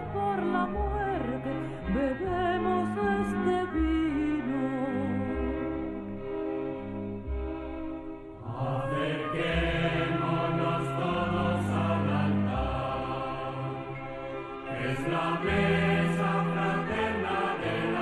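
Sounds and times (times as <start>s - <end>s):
sustained instrumental accompaniment: 0.1s - 18.0s
voices singing a hymn: 8.4s - 18.0s.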